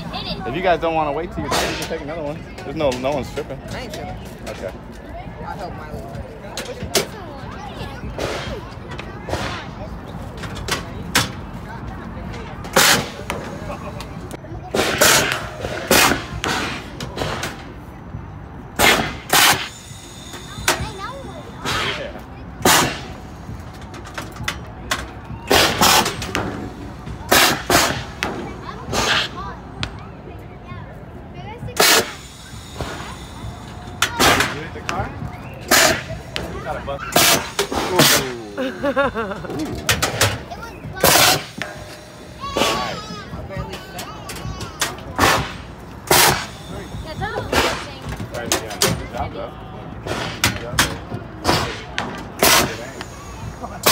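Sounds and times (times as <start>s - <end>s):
air cannons popping: 12.7s - 17.7s, 18.8s - 21.0s, 21.6s - 29.4s, 31.8s - 38.7s, 39.4s - 49.0s, 50.0s - 53.9s.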